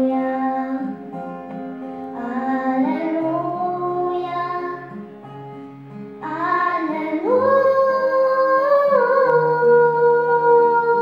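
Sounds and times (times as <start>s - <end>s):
girl singing into a microphone: 0.0s - 1.2s, 2.1s - 5.0s, 6.2s - 11.0s
acoustic guitar: 0.0s - 11.0s.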